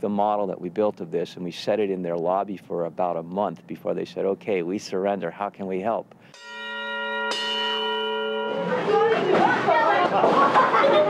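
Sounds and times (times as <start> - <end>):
bell-like chime: 6.3 - 9.4
children chattering: 8.2 - 11.0.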